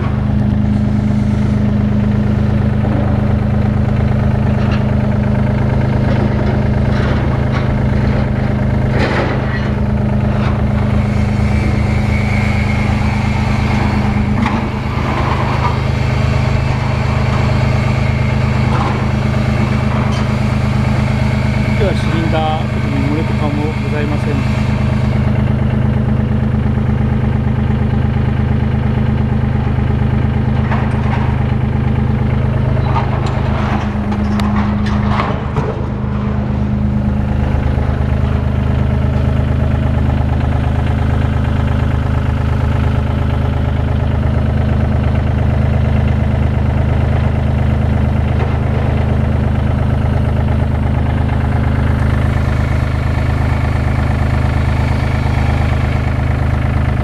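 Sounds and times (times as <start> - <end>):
diesel engine idling: 0.0 - 57.0.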